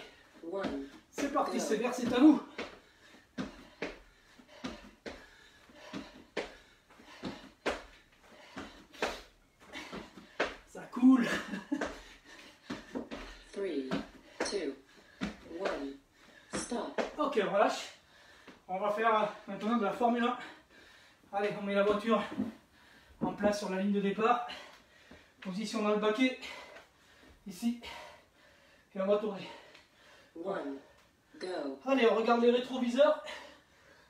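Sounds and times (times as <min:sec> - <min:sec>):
man's voice: 0:01.2 - 0:02.5.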